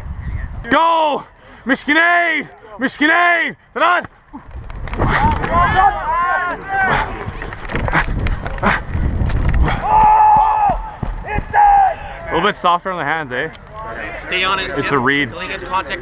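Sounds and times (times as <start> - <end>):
wind rumbling on microphone: 0.0 - 0.7, 4.3 - 12.3
players shouting and whooping: 5.0 - 8.0, 9.7 - 12.5.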